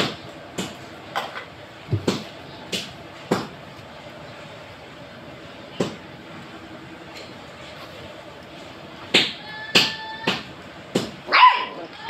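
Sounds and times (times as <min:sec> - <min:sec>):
dog barking: 0:11.3 - 0:11.9.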